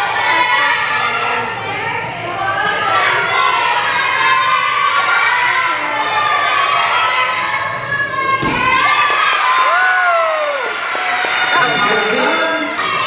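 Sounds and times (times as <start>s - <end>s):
children shouting and cheering: 2.6s - 13.0s.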